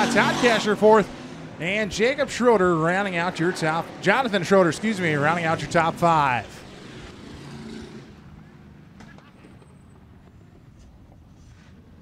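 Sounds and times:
car engines idling: 0.0s - 10.6s.

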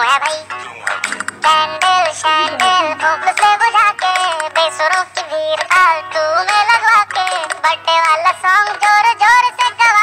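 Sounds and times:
music backing track: 0.0s - 10.0s
high-pitched voice singing: 1.5s - 4.5s.

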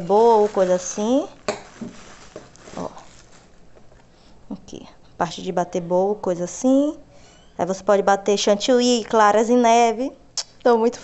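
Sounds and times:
plastic wrapping crinkling: 0.0s - 4.1s.

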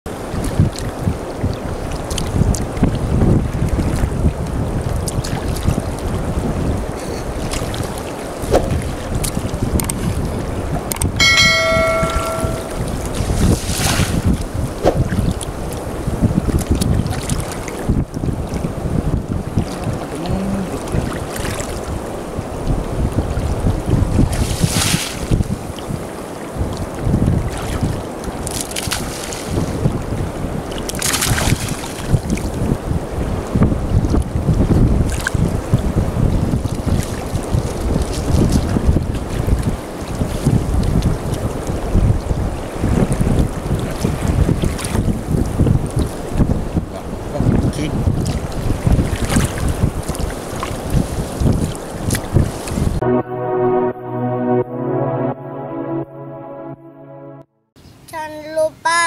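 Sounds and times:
wind buffeting microphone: 0.1s - 53.0s
short pitched tone: 11.2s - 13.0s, 53.0s - 57.6s
splashes of wading in water: 19.6s - 21.9s, 48.2s - 52.7s.

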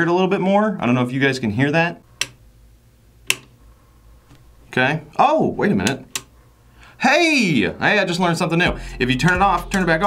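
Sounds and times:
power switch clicks: 2.2s - 2.4s, 3.2s - 3.6s, 5.8s - 6.4s.

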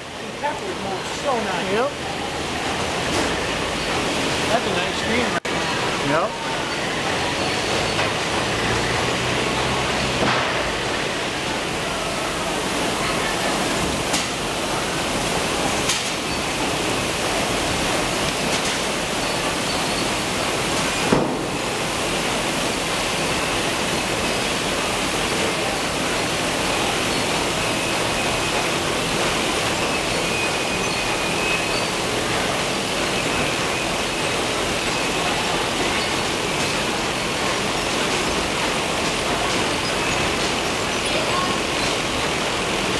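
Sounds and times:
conveyor line rushing noise: 0.0s - 42.9s
water spraying: 7.1s - 42.9s.

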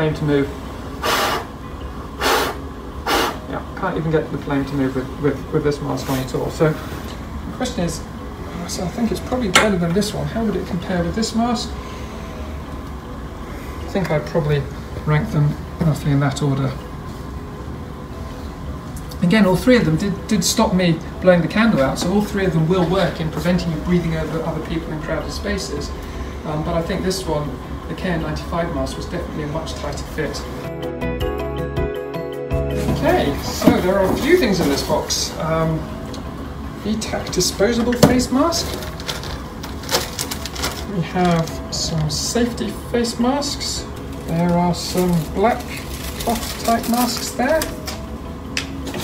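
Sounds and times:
faint hum: 0.0s - 31.3s, 32.5s - 49.0s
packaging clicking and rustling: 37.9s - 42.2s, 44.0s - 48.1s.

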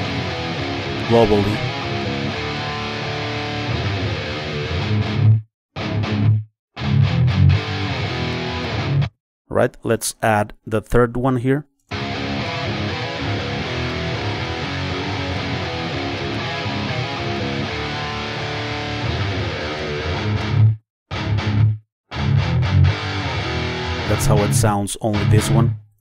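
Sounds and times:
electric guitar playing: 0.0s - 9.1s, 11.9s - 25.7s.

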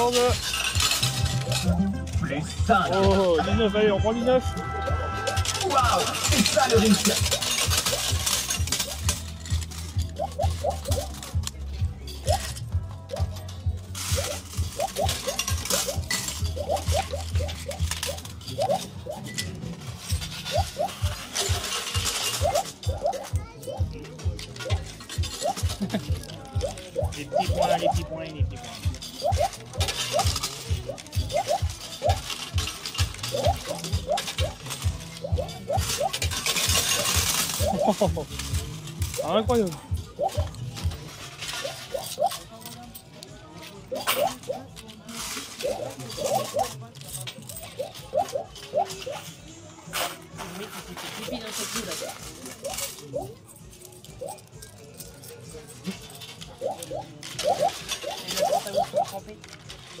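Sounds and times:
coins clinking and rattling: 0.0s - 60.0s
fairground music: 0.0s - 60.0s.

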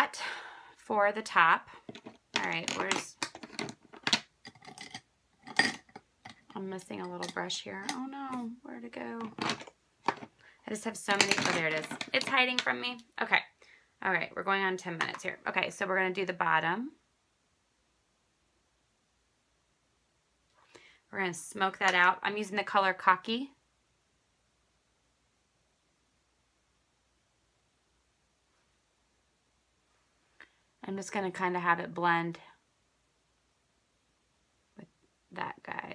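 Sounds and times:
faint breathy sound: 0.2s - 0.8s, 20.6s - 21.2s
makeup brushes and cases clicking: 1.9s - 8.4s, 9.2s - 10.3s, 11.1s - 12.8s.

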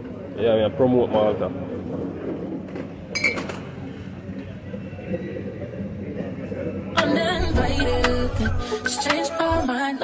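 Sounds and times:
low background hubbub: 0.0s - 9.7s.

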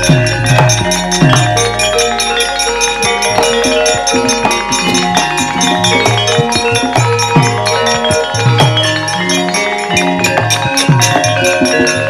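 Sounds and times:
hand drum strokes: 0.0s - 12.0s
metallophones ringing: 0.0s - 12.0s.

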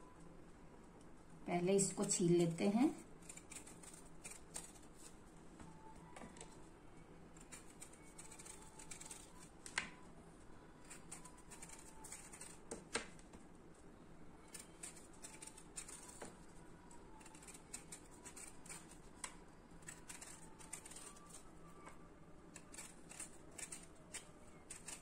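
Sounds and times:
knife scraping mango skin: 3.2s - 5.2s, 7.4s - 9.5s, 10.8s - 12.7s, 14.4s - 16.3s, 17.1s - 21.5s, 22.5s - 25.0s.

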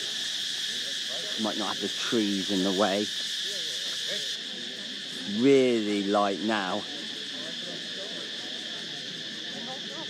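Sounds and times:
crickets chirping: 0.0s - 10.0s
faint voices: 0.0s - 10.0s.

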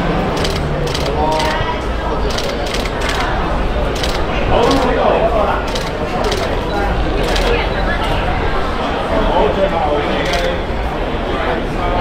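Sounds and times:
crowd chatter: 0.0s - 12.0s
camera shutters clicking: 0.4s - 1.6s, 2.3s - 3.3s, 4.0s - 5.0s, 5.7s - 6.6s, 7.2s - 7.6s, 10.2s - 10.5s.

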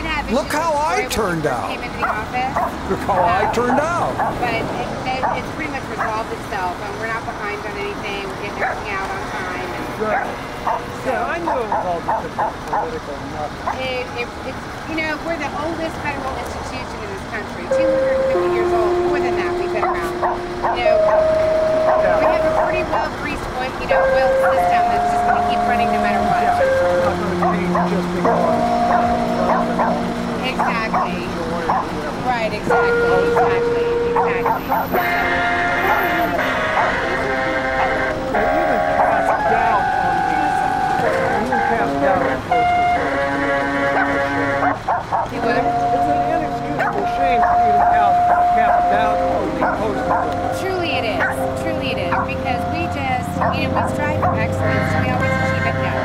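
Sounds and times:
voices: 0.0s - 56.0s
dog yipping: 10.1s - 12.9s, 19.5s - 23.1s, 23.9s - 32.0s, 32.8s - 35.1s, 43.9s - 52.6s, 53.2s - 55.0s
steady synthesizer tones: 17.6s - 56.0s.

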